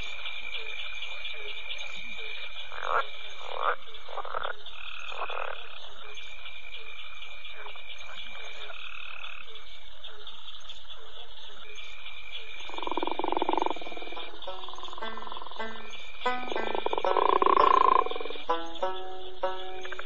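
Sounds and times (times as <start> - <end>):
deep frog croak: 0.0 - 20.0
frogs croaking: 0.0 - 20.0
insects chirring: 0.0 - 20.0.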